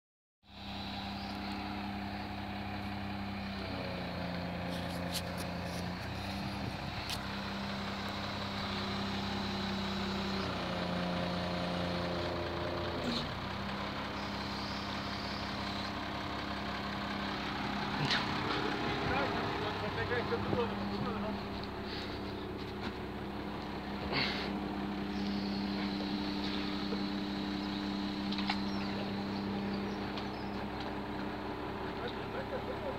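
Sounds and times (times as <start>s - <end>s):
excavator diesel engine running: 0.5s - 32.9s.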